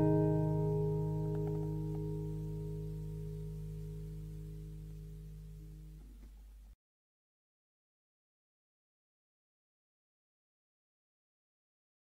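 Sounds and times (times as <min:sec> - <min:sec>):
acoustic guitar chord ringing: 0:00.0 - 0:06.0.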